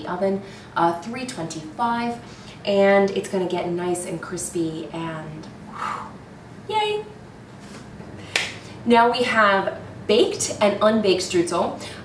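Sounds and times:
woman speaking: 0.0s - 5.5s, 6.7s - 7.2s, 8.8s - 11.9s
finger snap: 8.3s - 8.6s.

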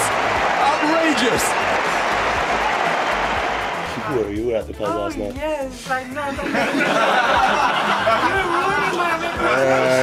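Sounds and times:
crowd clapping: 0.0s - 4.3s.

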